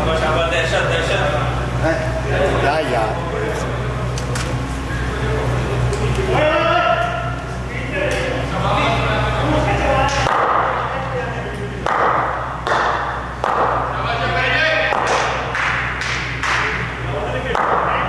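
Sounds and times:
distant voices: 0.0 - 18.0
steady low hum: 0.0 - 18.0
sharp echoing thuds: 11.8 - 14.0.

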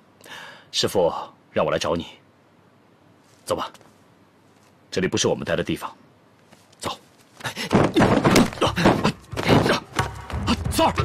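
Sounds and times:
dull thuds of blows: 7.4 - 10.2.

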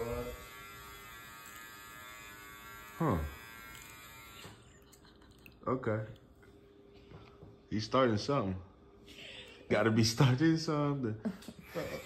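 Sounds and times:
small appliance motor buzzing: 0.0 - 4.8, 11.6 - 12.0.

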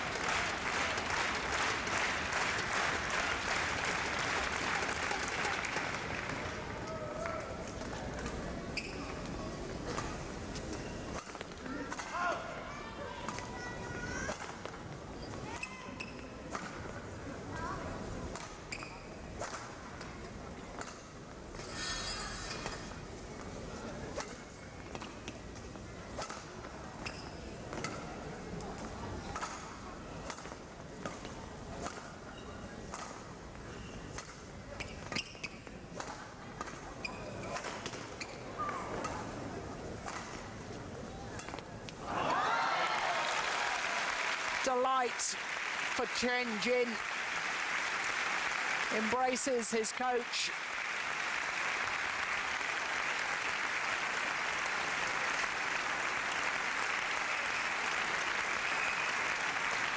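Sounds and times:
murmur of indoor crowd: 0.0 - 59.9
rackets striking shuttlecock: 40.0 - 40.5.

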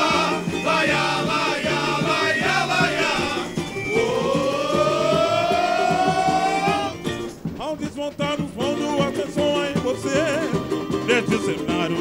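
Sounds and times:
samba drums playing a beat: 0.0 - 12.0
siren-like rising tone: 2.0 - 7.1.

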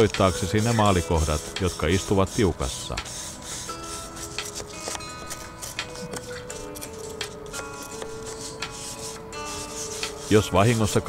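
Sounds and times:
wire brush scraping wood: 0.0 - 11.0.

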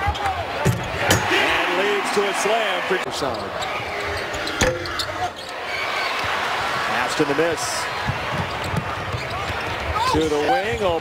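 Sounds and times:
basketball bouncing on wooden floor: 8.0 - 11.0.

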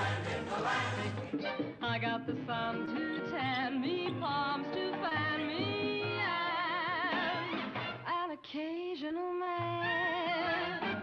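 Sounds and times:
musical accompaniment: 0.0 - 8.2, 9.6 - 11.0
woman singing: 1.8 - 11.0.

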